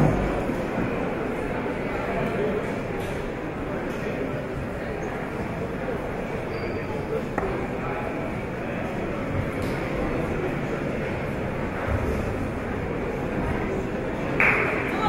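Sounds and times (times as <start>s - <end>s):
crowd murmur in a hall: 0.0s - 15.0s.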